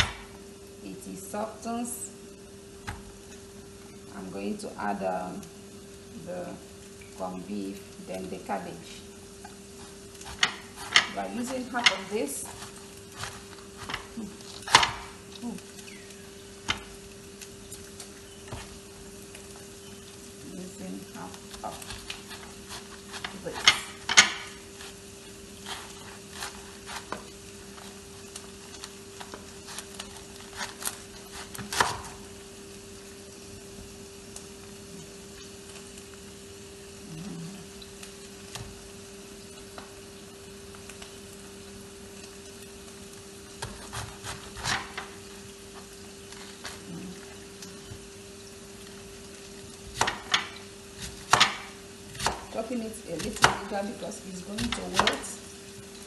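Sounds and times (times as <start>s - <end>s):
onions sizzling in oil: 0.0s - 56.0s
knife cutting cabbage: 9.8s - 15.1s, 21.6s - 25.0s, 25.6s - 28.0s, 29.5s - 32.2s, 43.6s - 45.2s, 50.0s - 55.4s.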